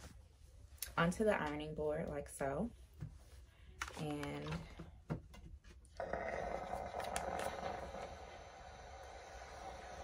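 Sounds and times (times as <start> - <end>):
steam iron hissing: 7.5 - 10.0.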